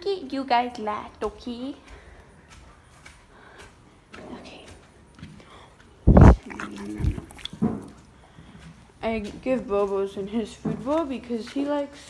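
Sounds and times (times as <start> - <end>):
horse snorting: 6.0 - 8.8
low horse vocal sound: 6.0 - 8.8.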